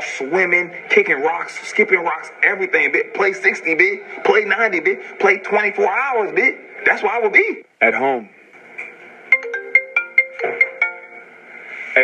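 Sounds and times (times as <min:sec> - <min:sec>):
mobile phone ringtone: 0:09.3 - 0:11.4.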